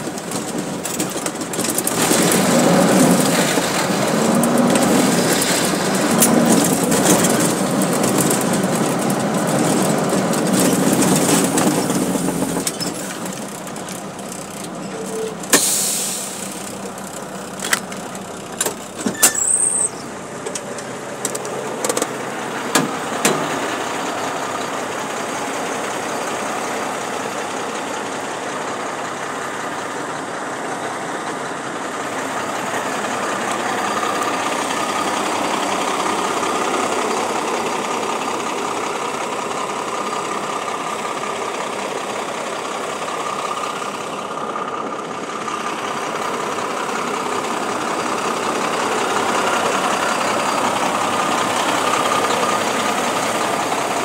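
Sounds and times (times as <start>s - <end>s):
diesel truck engine idling: 0.0s - 54.0s
sharp knocks and clunks: 20.4s - 23.7s.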